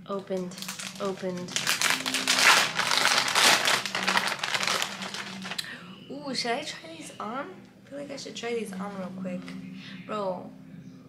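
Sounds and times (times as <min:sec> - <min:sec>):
plastic packaging crinkling: 0:00.1 - 0:05.7.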